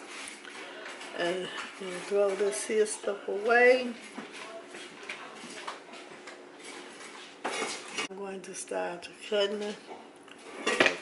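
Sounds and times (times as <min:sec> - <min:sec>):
kitchen knocks and rustles: 0:00.0 - 0:08.1, 0:09.5 - 0:11.0.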